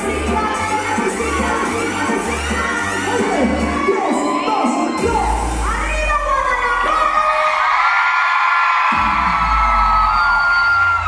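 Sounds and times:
loud music with pulsing bass: 0.0s - 7.8s, 8.9s - 11.0s
crowd shouting and cheering: 0.0s - 11.0s.

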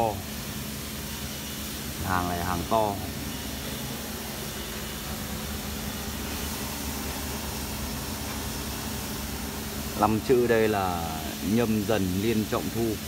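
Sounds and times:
background hum and hiss: 0.0s - 13.0s.

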